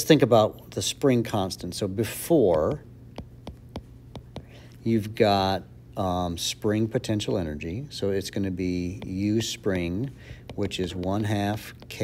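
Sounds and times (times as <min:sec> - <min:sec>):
stylus tapping on glass screen: 0:02.4 - 0:04.6, 0:10.4 - 0:11.2.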